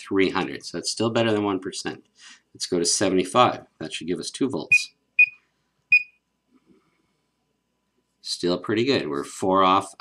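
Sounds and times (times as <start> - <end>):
high keypress beep: 4.7 - 6.1.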